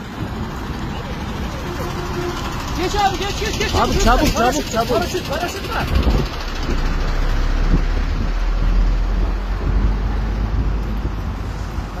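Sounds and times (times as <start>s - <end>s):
road traffic: 0.0s - 12.0s
wind rumble on microphone: 5.8s - 12.0s.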